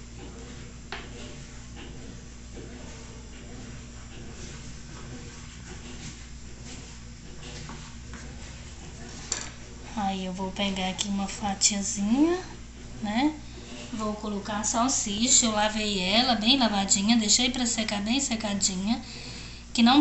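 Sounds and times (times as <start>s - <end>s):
washing machine humming: 0.0s - 20.0s.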